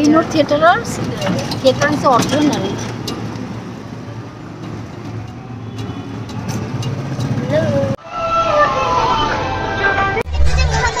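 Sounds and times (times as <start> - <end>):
vehicle engine and road noise: 0.0 - 11.0.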